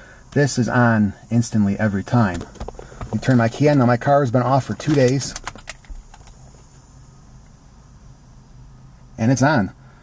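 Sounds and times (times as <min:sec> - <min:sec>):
faint low hum inside car: 0:00.0 - 0:10.0.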